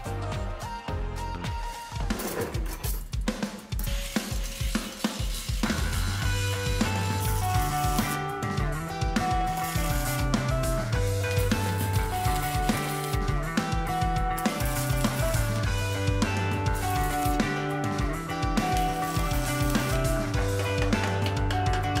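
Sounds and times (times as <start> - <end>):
background music with drum beat: 0.0 - 22.0.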